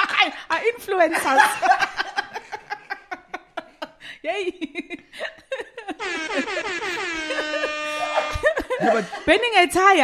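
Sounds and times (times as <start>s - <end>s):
air horn blast: 6.0s - 8.6s.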